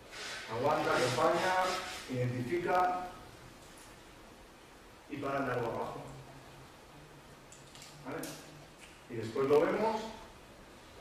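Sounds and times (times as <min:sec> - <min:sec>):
faint low hum: 0:00.5 - 0:11.0.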